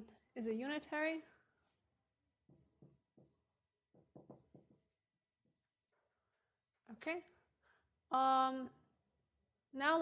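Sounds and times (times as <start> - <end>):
marker writing on whiteboard: 1.4 - 6.0.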